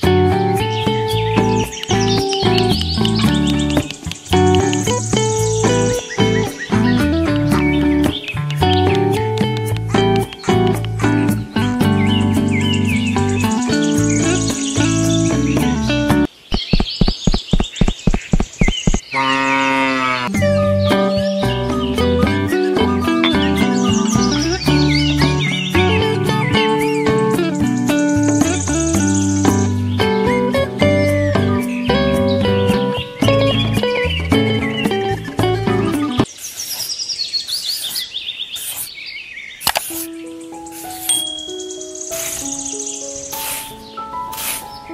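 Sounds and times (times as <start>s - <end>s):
music: 0.0s - 16.3s, 20.3s - 36.3s, 40.0s - 44.9s
bird chirping rapidly: 0.6s - 19.4s, 31.5s - 44.9s
fast sharp clicks: 8.5s - 11.0s, 16.5s - 19.0s
cow mooing: 19.2s - 20.3s.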